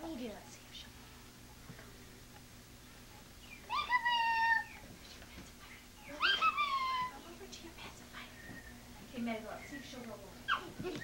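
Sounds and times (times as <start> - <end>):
baby squealing: 6.2 - 7.2.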